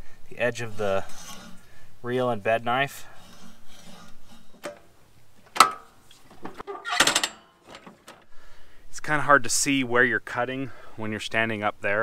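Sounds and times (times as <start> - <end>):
short rasping cut: 0.5 - 1.6, 3.0 - 4.8
mower reel blades clicking: 4.5 - 8.3.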